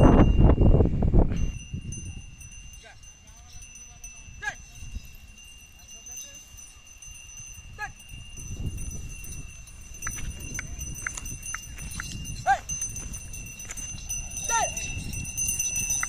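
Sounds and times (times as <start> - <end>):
harness bell tinkles: 0.0 - 16.0.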